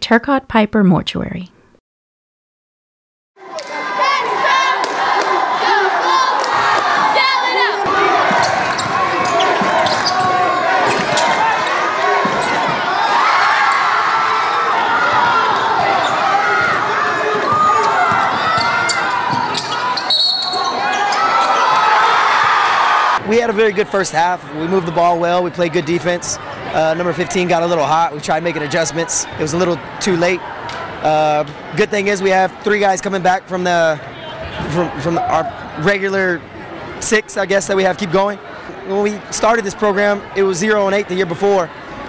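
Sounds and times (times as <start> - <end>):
crowd shouting and cheering: 3.4 - 42.0
basketball bouncing on hardwood: 17.5 - 19.5.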